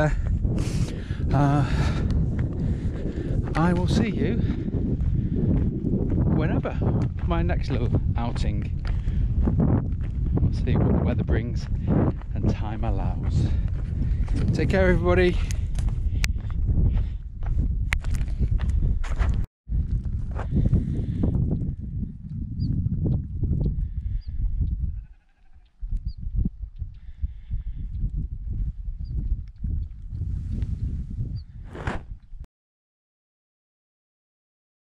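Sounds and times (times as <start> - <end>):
wind buffeting microphone: 0.0 - 32.5.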